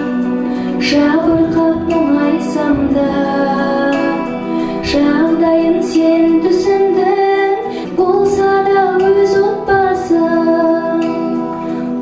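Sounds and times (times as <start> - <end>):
musical accompaniment: 0.0 - 12.0
woman singing into microphone: 0.0 - 12.0.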